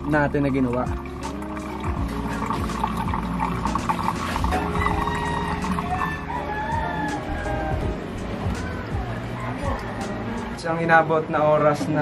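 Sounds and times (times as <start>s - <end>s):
rooster crowing: 4.5s - 10.6s.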